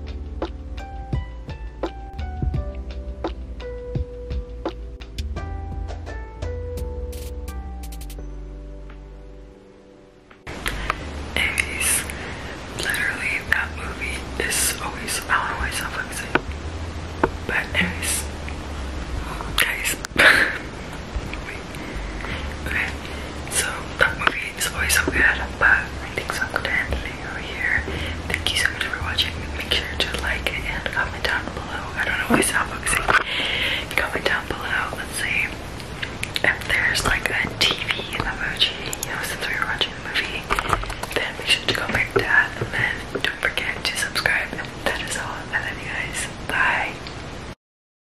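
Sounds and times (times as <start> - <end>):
woman whispering: 11.4 - 16.4, 17.4 - 18.3, 19.2 - 20.1, 22.3 - 35.6, 36.4 - 47.0.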